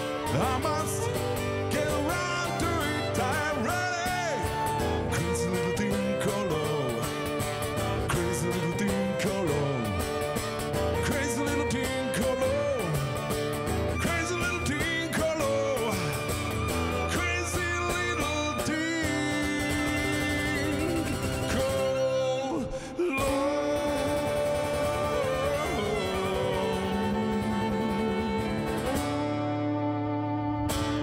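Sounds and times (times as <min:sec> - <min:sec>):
strummed acoustic guitar: 0:00.0 - 0:31.0
violin melody: 0:00.0 - 0:31.0.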